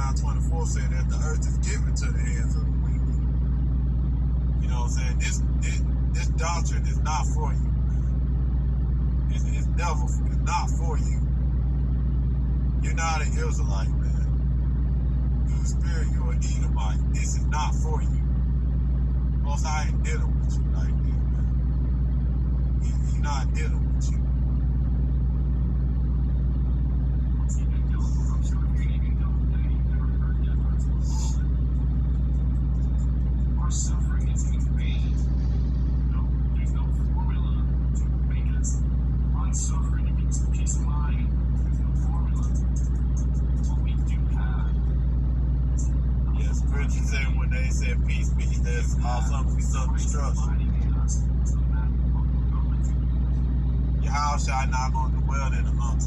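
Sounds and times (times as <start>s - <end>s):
low hum: 0.0s - 56.0s
faint indistinct speech: 33.6s - 35.4s, 39.4s - 44.8s.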